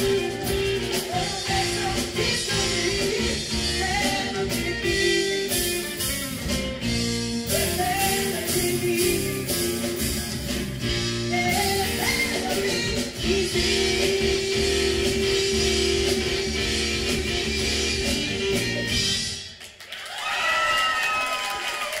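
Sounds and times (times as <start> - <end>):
woman singing: 0.0 - 5.6, 7.5 - 9.7, 11.3 - 18.3
electric bass: 0.0 - 19.4
electric guitar: 0.0 - 19.4
drum kit: 0.0 - 19.6.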